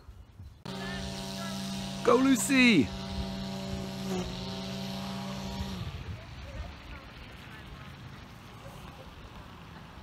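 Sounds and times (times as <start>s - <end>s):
engine hum: 0.6s - 10.0s.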